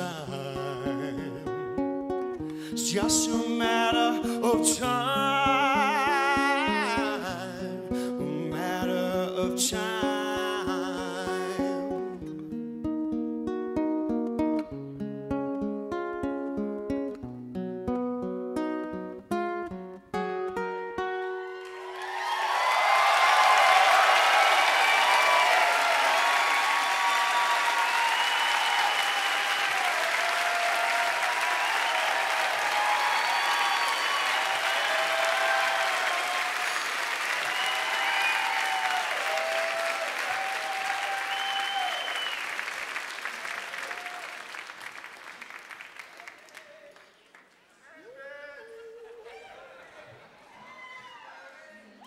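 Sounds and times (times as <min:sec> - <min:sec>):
audience applauding: 0:21.4 - 0:48.0
crowd cheering and whooping: 0:21.5 - 0:44.8, 0:48.5 - 0:52.0
whistles: 0:26.6 - 0:30.0, 0:31.4 - 0:39.9, 0:40.5 - 0:43.4.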